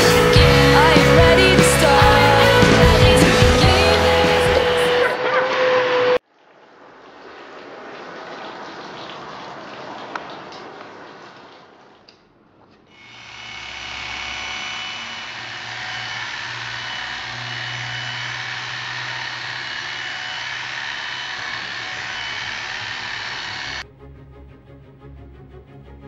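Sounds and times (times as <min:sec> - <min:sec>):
electric clippers running: 0:00.0 - 0:05.4, 0:13.0 - 0:23.8.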